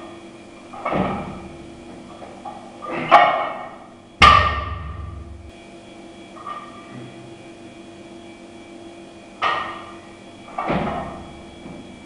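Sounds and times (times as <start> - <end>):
barbell plates clanking: 2.5 - 5.5
metallic ring of bar: 3.1 - 5.4
barbell thudding on floor: 3.2 - 5.4.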